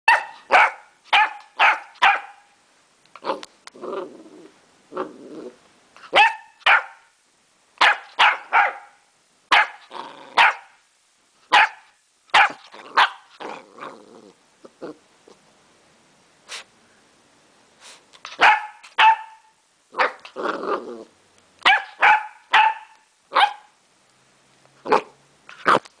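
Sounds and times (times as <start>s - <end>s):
small dog barking: 0.1s - 2.6s, 6.0s - 7.1s, 7.8s - 10.8s, 11.5s - 13.6s, 18.3s - 20.3s, 21.6s - 23.8s, 24.8s - 25.9s
dog growling: 3.2s - 5.6s, 9.8s - 10.5s, 12.6s - 15.4s, 19.9s - 21.2s.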